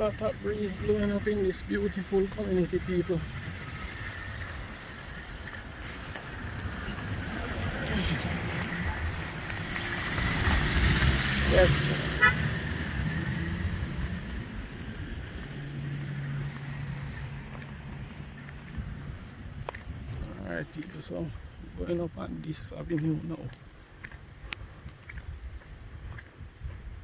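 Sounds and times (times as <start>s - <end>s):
wind rumbling on microphone: 0.0s - 27.0s.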